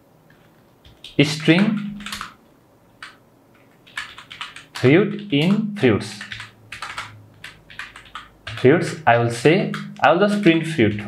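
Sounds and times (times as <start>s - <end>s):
computer keyboard typing: 0.3s - 2.4s, 3.0s - 11.0s.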